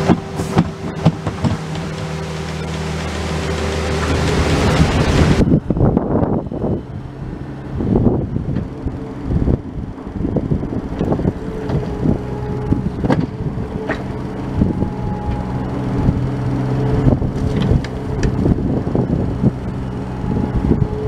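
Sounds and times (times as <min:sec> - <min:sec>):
sharp knocks: 0:00.0 - 0:02.1
bucket dragging dirt: 0:00.0 - 0:05.4
excavator diesel engine running: 0:00.0 - 0:21.0.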